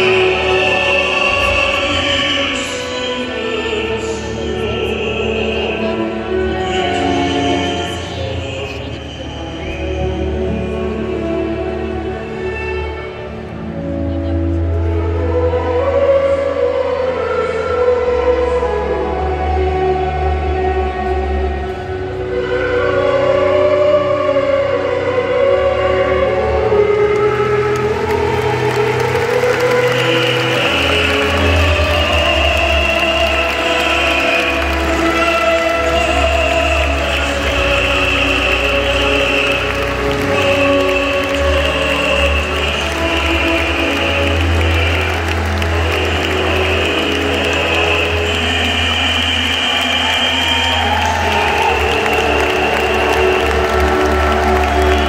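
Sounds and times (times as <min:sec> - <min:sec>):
music over public address system: 0:00.0 - 0:55.0.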